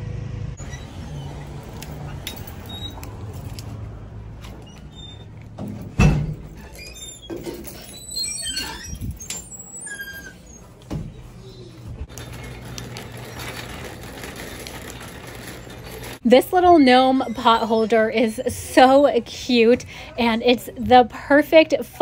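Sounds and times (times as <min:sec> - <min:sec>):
door squeaking and rattling: 0:00.6 - 0:03.6, 0:04.4 - 0:16.2.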